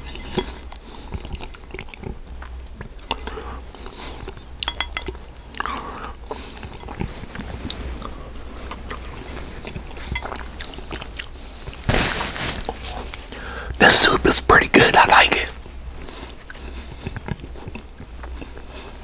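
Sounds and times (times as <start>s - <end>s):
close chewing: 0.0s - 11.9s, 16.0s - 19.0s
wet mouth sounds: 0.6s - 11.4s
breathy burst: 13.3s - 13.8s
person's voice: 13.8s - 15.6s.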